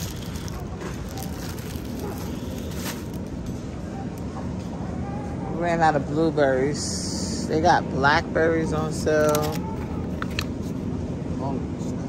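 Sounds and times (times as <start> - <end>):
store background rumble: 0.0 - 12.0.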